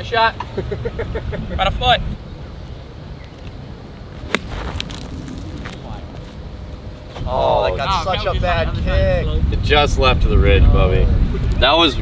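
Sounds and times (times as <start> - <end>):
golf club striking ball: 4.2 - 5.7
wind on microphone: 4.4 - 12.0.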